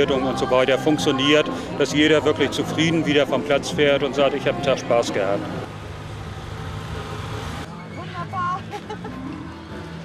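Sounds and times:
outdoor background noise: 4.2 - 10.0
car engine idling: 5.4 - 7.7.

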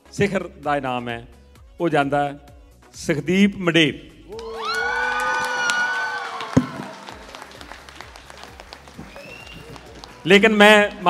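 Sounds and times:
audience applauding and cheering: 4.3 - 10.5.

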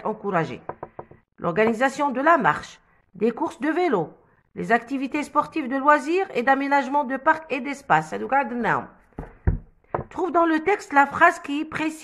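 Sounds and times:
dull handling knocks: 0.7 - 1.2.

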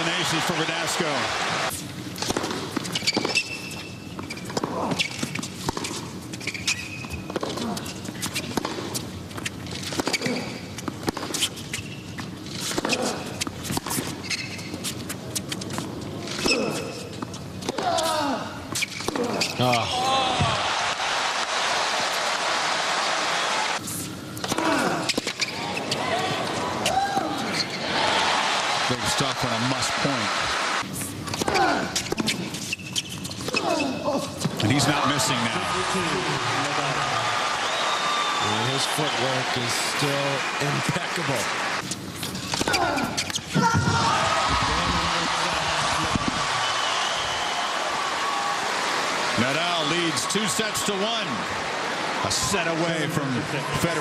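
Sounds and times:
crowd cheering and applauding: 0.0 - 1.7, 20.0 - 23.8, 27.8 - 30.8, 34.7 - 41.8, 43.9 - 54.0
crowd calling out: 0.0 - 1.8, 19.2 - 23.8, 24.5 - 30.8, 34.6 - 41.8, 42.6 - 54.0
racket hitting tennis ball: 2.2 - 3.4
tennis ball bouncing: 2.2 - 6.6.

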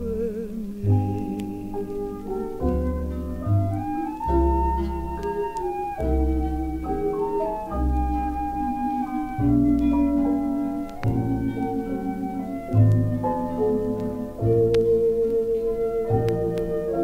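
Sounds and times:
vocal jazz record instrumental: 0.0 - 17.0.

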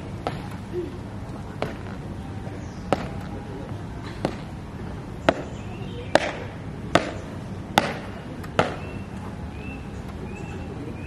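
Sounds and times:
marching footsteps on pavement: 0.0 - 9.4.

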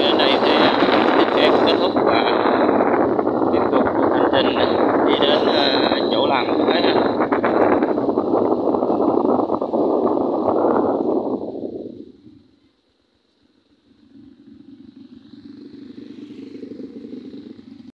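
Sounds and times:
motorbike engine: 0.0 - 17.9
wind rushing over microphone: 0.0 - 17.9.

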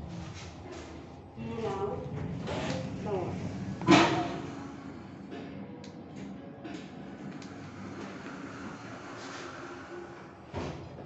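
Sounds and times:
low steady hum: 0.0 - 10.4
people talking: 1.4 - 4.0.

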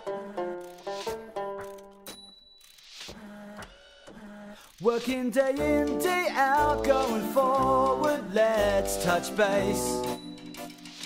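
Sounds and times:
person singing: 0.0 - 1.4, 3.1 - 10.2.

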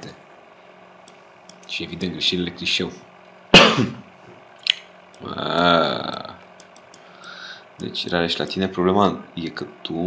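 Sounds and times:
man coughing: 3.5 - 4.1.

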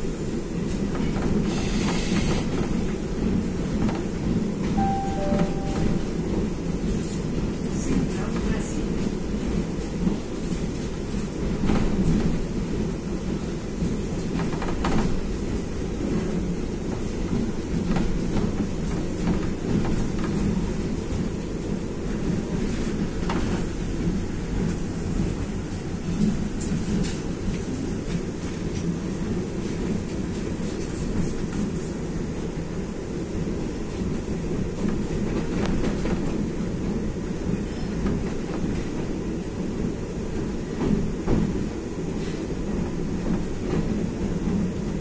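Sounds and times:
electric train rumbling on rails: 0.0 - 45.0
two-note descending tone: 4.8 - 6.3.

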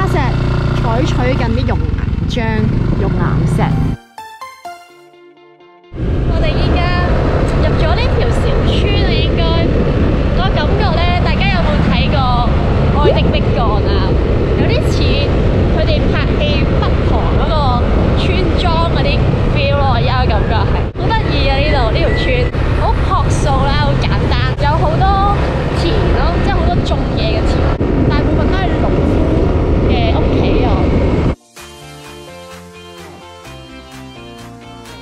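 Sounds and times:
wind and motorbike road noise: 0.0 - 4.0, 6.0 - 31.4
woman talking: 0.0 - 4.0, 6.3 - 9.8, 10.4 - 29.2, 29.9 - 30.9.

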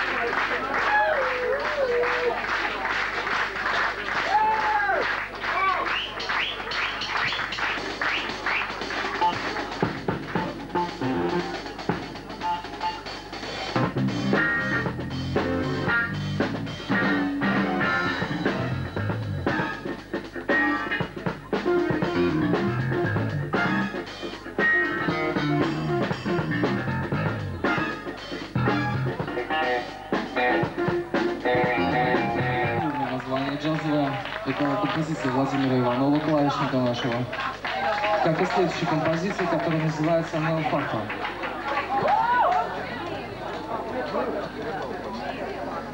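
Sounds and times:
keyboards: 5.3 - 42.0
drum kit: 5.8 - 41.2
jazz band playing: 5.9 - 37.4
electric guitar lines: 13.7 - 34.2.

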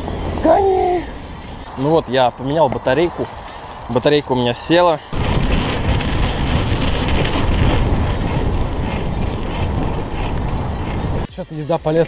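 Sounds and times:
wind buffeting microphone: 0.0 - 11.3
bike tyre rumble on dirt: 2.1 - 11.3.

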